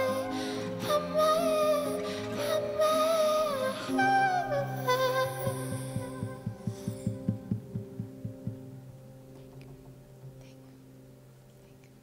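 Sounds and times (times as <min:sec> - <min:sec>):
soft low beat: 0:05.4 - 0:10.6.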